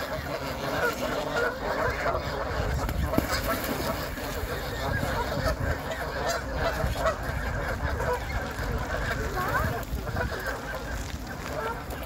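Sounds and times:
geese honking: 0:00.0 - 0:12.0.

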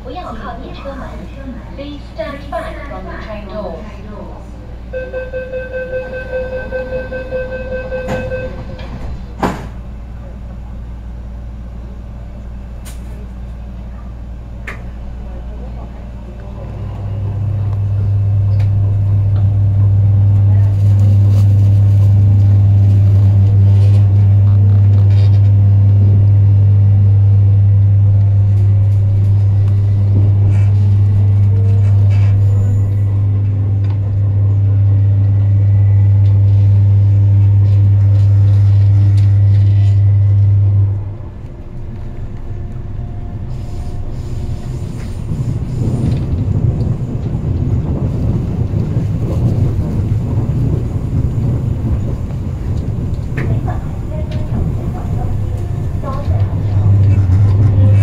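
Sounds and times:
train electrical hum: 0:00.0 - 0:58.0
wheels rumbling on track: 0:00.0 - 0:58.0.

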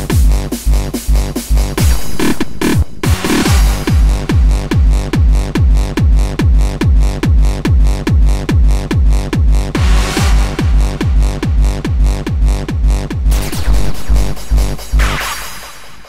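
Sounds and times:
distorted kick drum: 0:00.0 - 0:16.0
hardstyle dance music: 0:00.0 - 0:16.0.

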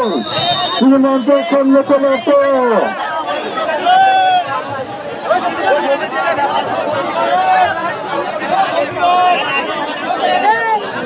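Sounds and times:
crowd shouting and talking: 0:00.0 - 0:11.0.

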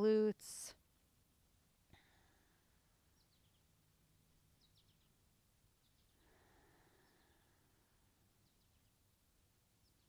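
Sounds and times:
faint high bird chirps: 0:03.1 - 0:03.8, 0:04.5 - 0:05.2, 0:05.8 - 0:07.7, 0:08.4 - 0:09.1, 0:09.8 - 0:10.0.

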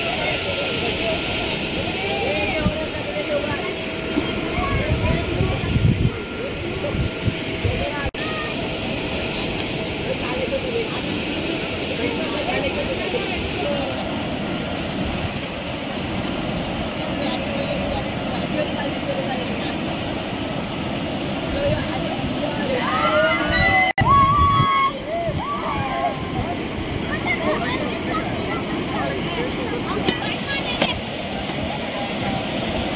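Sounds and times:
outdoor rumble and hiss: 0:00.0 - 0:32.9.

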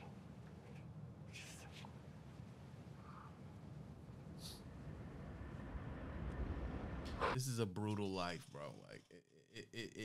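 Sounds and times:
low steady rumble: 0:00.0 - 0:07.3.

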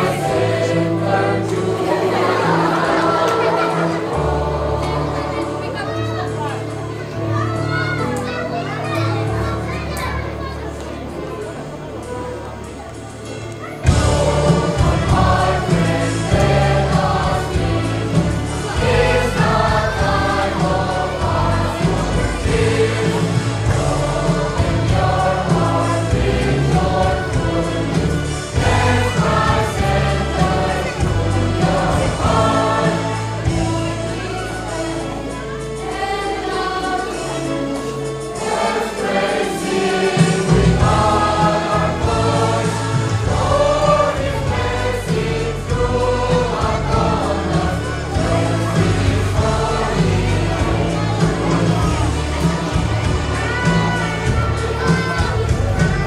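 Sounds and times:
children's choir singing: 0:00.0 - 0:56.0.

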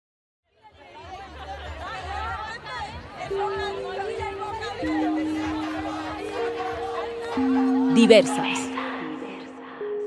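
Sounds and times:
babble of voices: 0:00.8 - 0:09.9.

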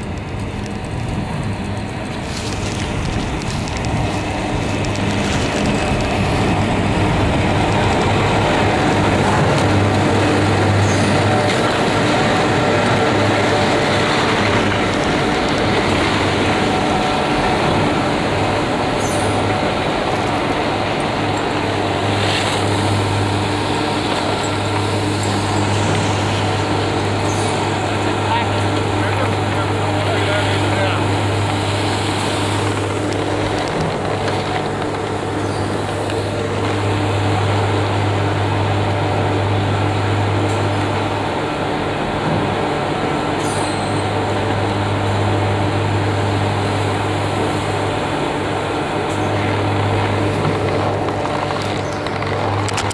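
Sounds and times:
chairlift machinery humming: 0:00.0 - 0:52.9.

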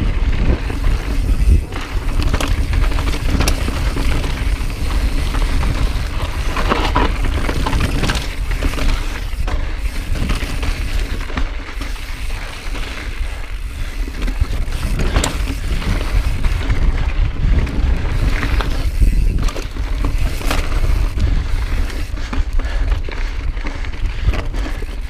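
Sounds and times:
bike rattling: 0:00.0 - 0:25.0
wind buffeting microphone: 0:00.0 - 0:25.0
tyres crunching over gravel: 0:00.2 - 0:25.0.

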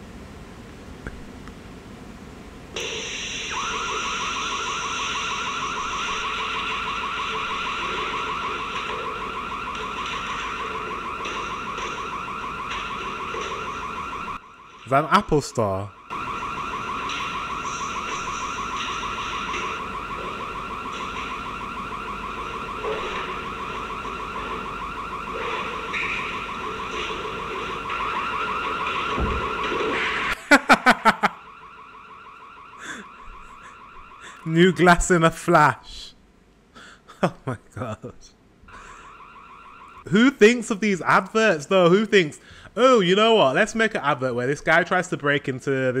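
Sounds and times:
burglar alarm pulsing tone: 0:02.8 - 0:35.6, 0:38.7 - 0:42.6.

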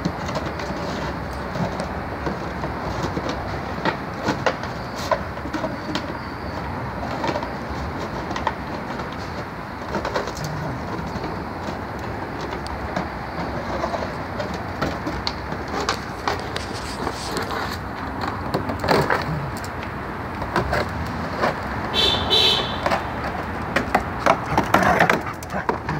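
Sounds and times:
outdoor background noise: 0:00.0 - 0:25.9.

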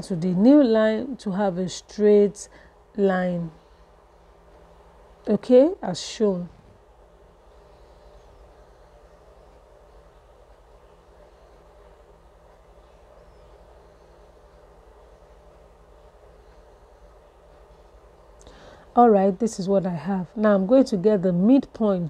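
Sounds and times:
faint low room hum: 0:00.0 - 0:22.0.

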